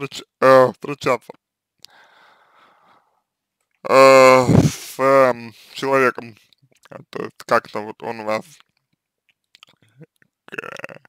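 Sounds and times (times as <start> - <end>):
man's hesitation sounds: 3.8 - 5.3, 9.6 - 11.0.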